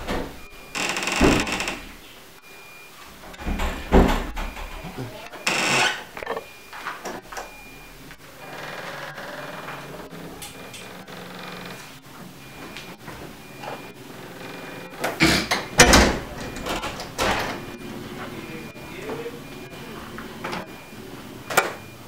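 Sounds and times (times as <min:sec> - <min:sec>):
wooden door opening and shutting: 0:00.0 - 0:02.1, 0:03.1 - 0:17.8, 0:20.4 - 0:22.0.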